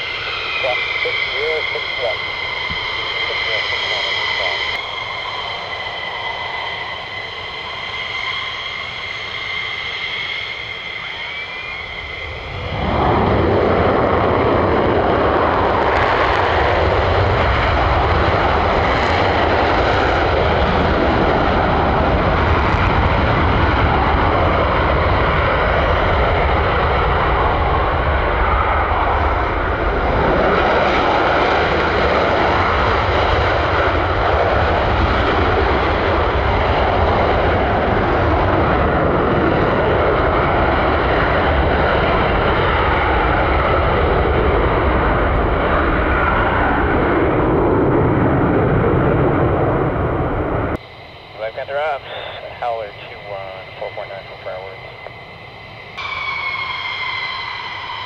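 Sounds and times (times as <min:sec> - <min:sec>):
jet taking off on afterburner: 0:00.0 - 0:58.0.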